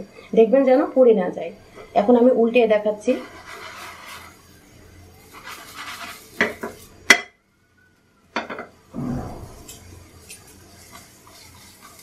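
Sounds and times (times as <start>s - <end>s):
spatula scraping frying pan: 3.1s - 4.5s, 5.2s - 6.9s, 9.6s - 12.0s.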